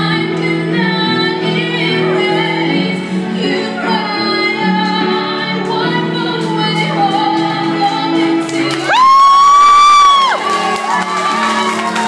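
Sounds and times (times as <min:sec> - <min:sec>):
woman singing into a microphone: 0:00.0 - 0:12.0.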